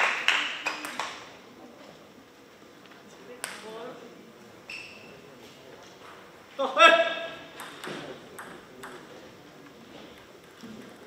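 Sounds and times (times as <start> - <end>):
ping-pong ball bouncing: 7.6 - 9.1.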